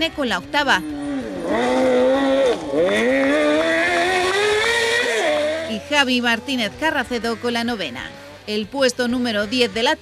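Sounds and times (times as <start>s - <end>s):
engine revving hard: 0.6s - 6.2s.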